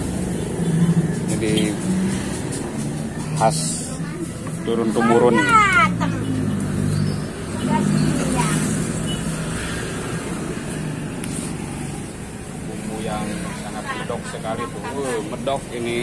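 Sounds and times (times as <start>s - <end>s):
vehicle engine humming: 0.0s - 16.0s.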